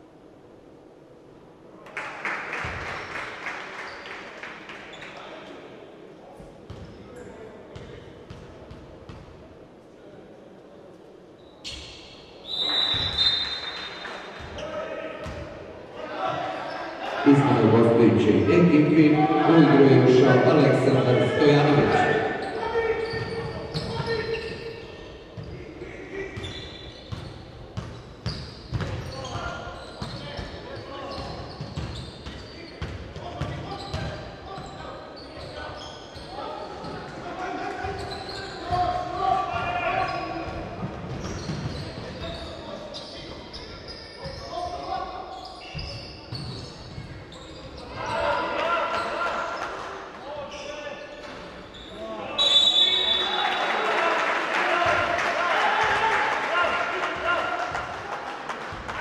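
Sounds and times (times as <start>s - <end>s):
voices calling out echoing: 12.5s - 26.8s, 41.4s - 51.2s.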